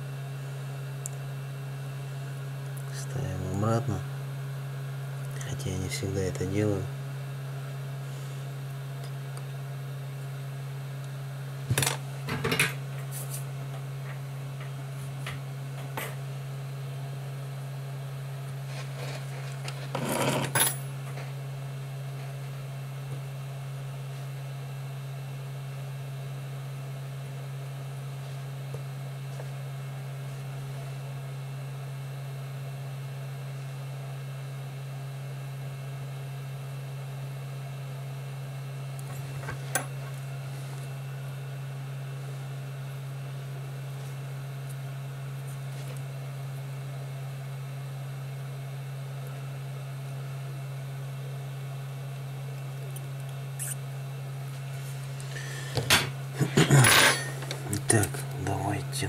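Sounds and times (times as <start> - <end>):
low electrical hum: 0.0 - 59.0.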